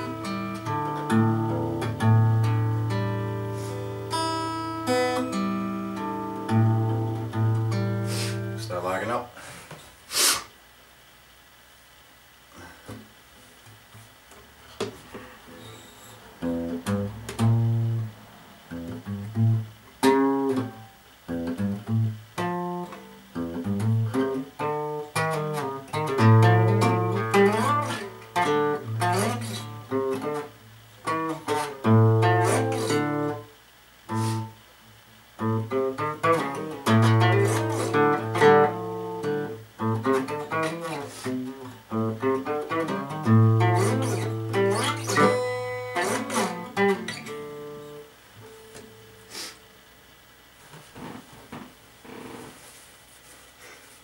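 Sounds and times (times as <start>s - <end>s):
fingerpicked acoustic guitar: 0.0s - 9.0s, 12.5s - 52.7s.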